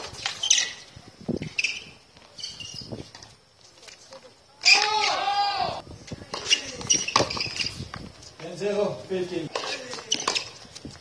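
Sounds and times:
racket hitting ball: 6.3 - 7.5.

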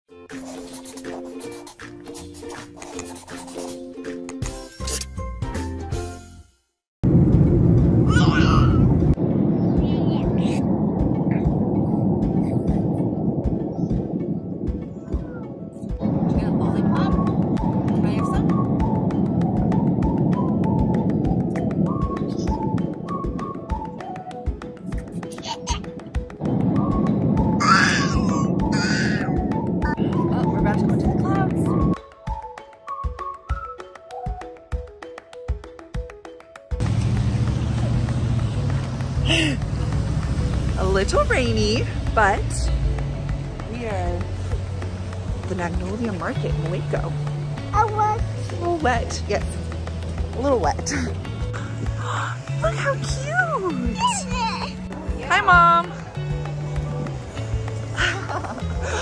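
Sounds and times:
background music: 0.1 - 59.0
light percussion beat: 0.3 - 6.2, 10.3 - 59.0
airliner cabin roar: 7.0 - 24.3, 36.8 - 42.4
toddler squealing and laughing: 8.1 - 8.9, 27.6 - 29.4.

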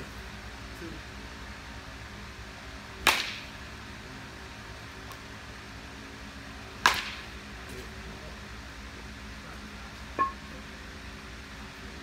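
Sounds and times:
bat striking ball: 3.0 - 3.5, 6.8 - 7.3, 10.2 - 10.4
low hum: 10.0 - 12.0.

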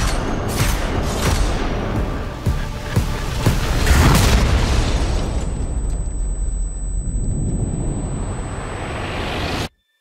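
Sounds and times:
trailer music: 0.0 - 9.8
explosion boom and rumble: 2.9 - 8.8.

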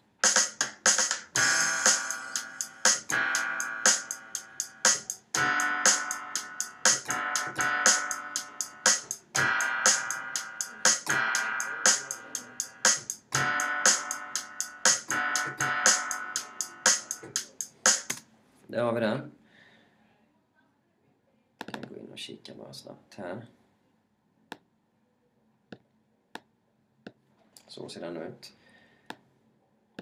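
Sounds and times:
drum loop: 0.0 - 18.2
hi-hat ticks: 0.2 - 18.2
piano chords: 1.3 - 18.1.

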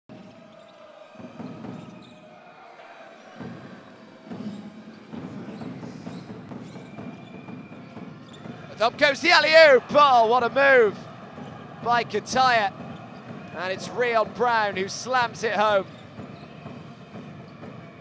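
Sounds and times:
indoor arena background noise: 0.0 - 18.0.

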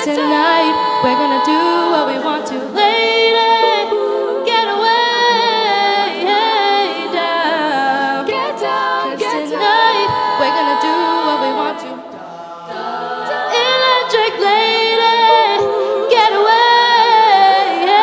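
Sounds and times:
women singing a cappella: 0.0 - 18.0.

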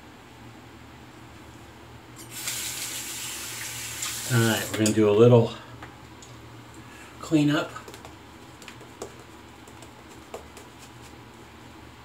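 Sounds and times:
tap water running into sink: 2.2 - 5.0.

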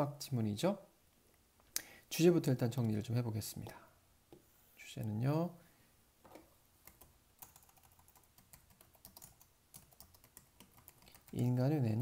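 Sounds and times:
faint keyboard typing: 6.2 - 11.7.

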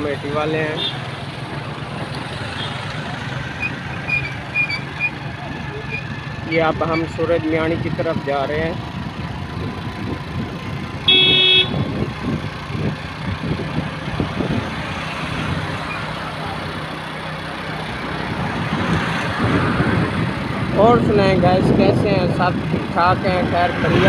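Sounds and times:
road and engine noise: 0.0 - 24.0
vehicle horn: 11.0 - 11.9.

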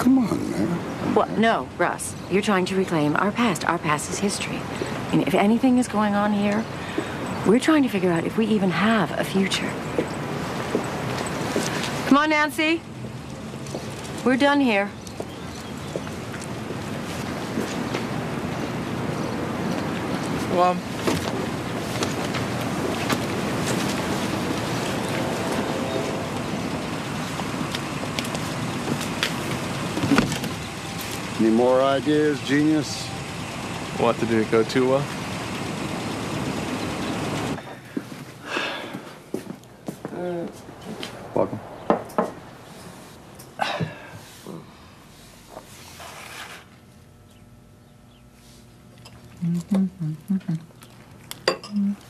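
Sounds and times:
street ambience rushing noise: 0.0 - 45.9.

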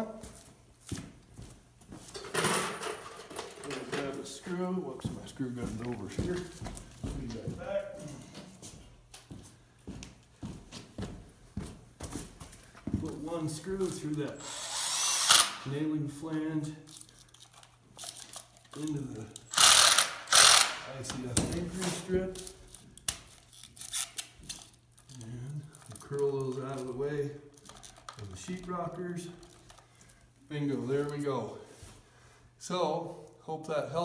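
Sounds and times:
footsteps on concrete: 0.1 - 2.2, 4.8 - 14.0.

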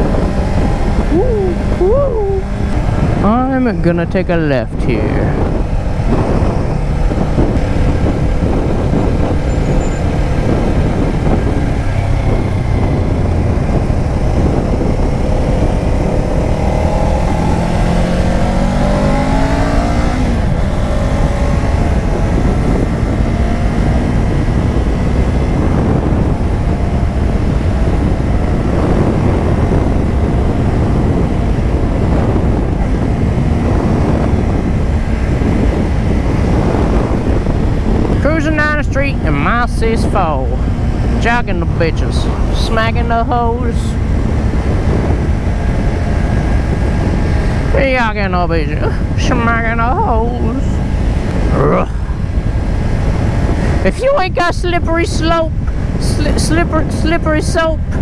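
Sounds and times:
motorcycle engine running: 0.0 - 58.0
wind rushing on microphone: 0.0 - 58.0.

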